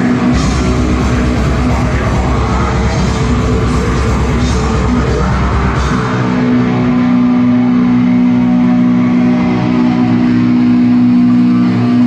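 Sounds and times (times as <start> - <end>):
distorted electric guitar note: 0.0 - 12.0.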